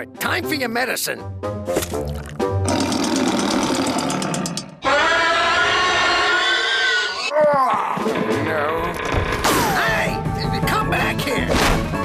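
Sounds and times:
liquid pouring and bubbling: 1.7 - 4.0.

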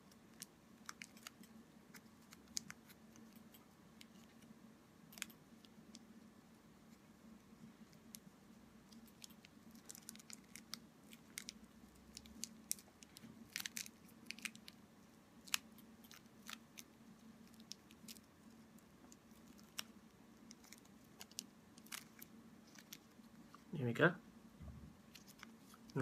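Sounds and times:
plastic crinkling and clicking: 0.0 - 4.5, 8.9 - 14.8, 15.4 - 23.7, 25.1 - 26.0
low steady hum: 0.0 - 26.0.

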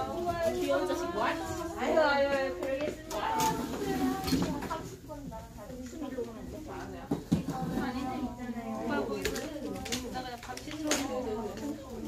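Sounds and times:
students talking: 0.0 - 12.0.

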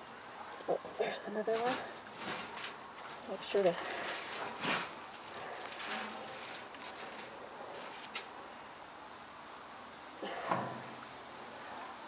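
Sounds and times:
hands rustling potting soil: 0.5 - 8.3.

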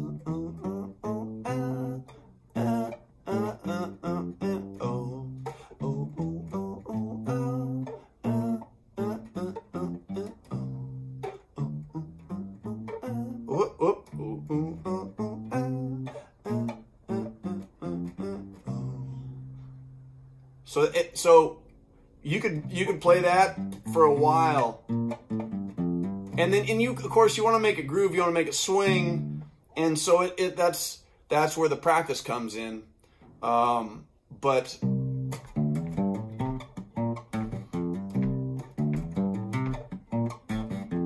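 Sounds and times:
acoustic bass guitar blues bassline: 0.0 - 41.0.

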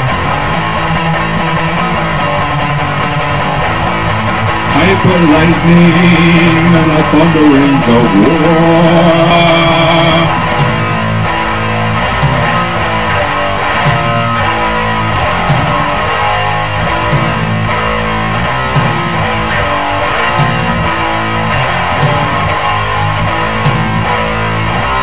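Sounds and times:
heavy metal electric guitar music: 0.0 - 25.0.

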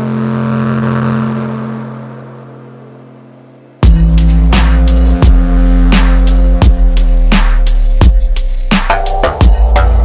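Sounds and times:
low synth bass tone: 0.0 - 10.0.

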